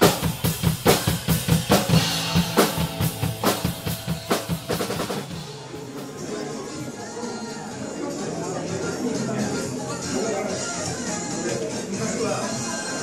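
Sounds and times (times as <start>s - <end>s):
drum kit playing steady beat: 0.0s - 7.0s.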